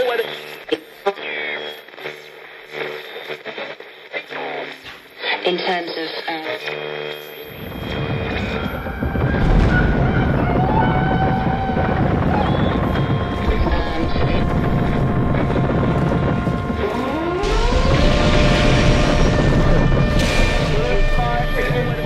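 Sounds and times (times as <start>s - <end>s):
engine whine: 7.4s - 22.0s
aircraft engines rumbling: 7.8s - 22.0s.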